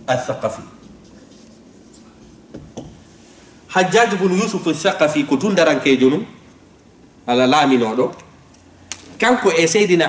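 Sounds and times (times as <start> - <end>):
marker writing on whiteboard: 0.5 - 3.0.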